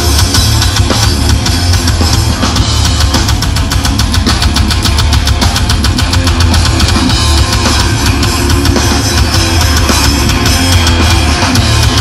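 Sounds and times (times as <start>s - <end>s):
distorted electric guitar: 0.0s - 12.0s
very fast drumming: 0.0s - 12.0s.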